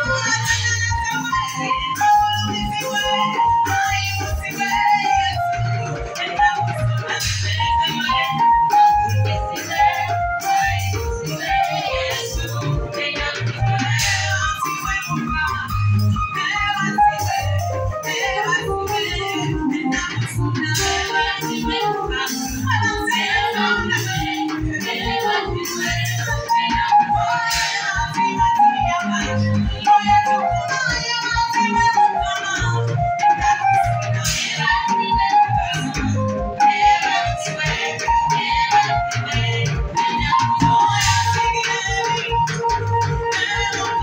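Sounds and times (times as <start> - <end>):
electronic keyboard melody: 0.0 - 44.0
live band music: 0.0 - 44.0
woman singing into microphone: 0.0 - 44.0.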